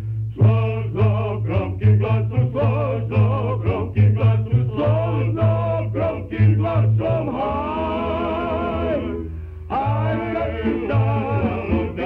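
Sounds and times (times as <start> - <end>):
men singing in harmony: 0.4 - 12.0
string band playing: 0.4 - 12.0.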